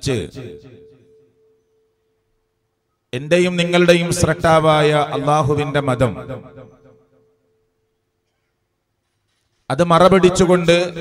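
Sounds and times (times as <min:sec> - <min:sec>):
faint steady tone: 0:00.5 - 0:03.2
person speaking: 0:09.7 - 0:11.0.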